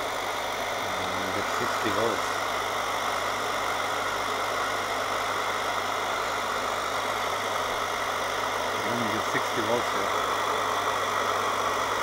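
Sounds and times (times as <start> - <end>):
oil burner motor humming: 0.0 - 12.0.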